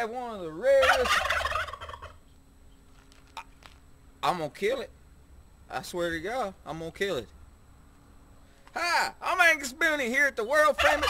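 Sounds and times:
man talking: 0.0s - 1.1s, 4.2s - 4.9s, 5.7s - 7.3s, 8.8s - 11.0s
guinea hen rattling cackle: 0.7s - 2.2s, 10.8s - 11.0s.

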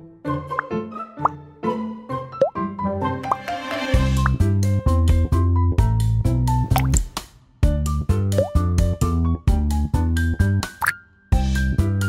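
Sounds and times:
cheerful children's music: 0.0s - 6.7s
cartoon plop effects: 6.7s - 7.1s.

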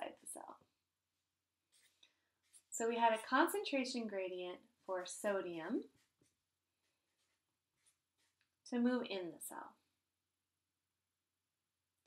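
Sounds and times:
marker writing on paper: 1.7s - 2.7s, 5.9s - 8.6s.

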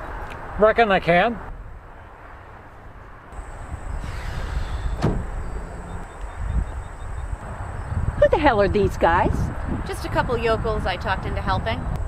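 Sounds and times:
car hood scraping: 3.4s - 6.2s.

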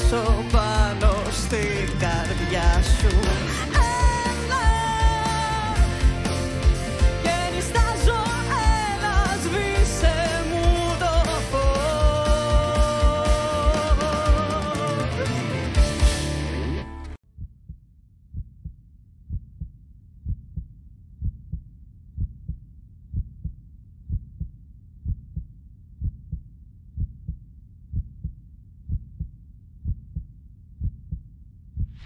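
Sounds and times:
music: 0.0s - 17.2s
heartbeat thumps: 17.4s - 32.0s.

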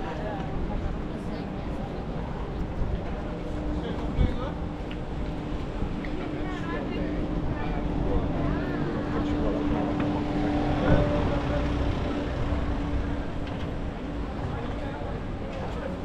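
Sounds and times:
pedestrians' voices: 0.0s - 16.0s.

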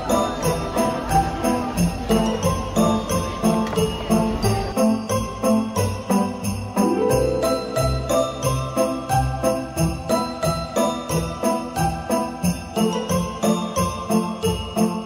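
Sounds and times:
jingle bells shaking: 0.0s - 15.0s
instrumental background music: 0.8s - 15.0s.

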